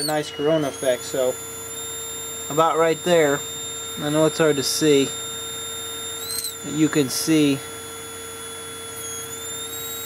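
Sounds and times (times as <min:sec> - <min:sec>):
transformer electrical whine and hum: 0:00.0 - 0:10.0.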